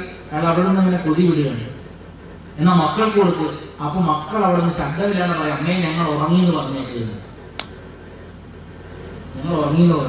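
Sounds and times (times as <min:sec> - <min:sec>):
room hum and hiss: 0:00.0 - 0:10.0
sharp click: 0:07.6 - 0:07.8.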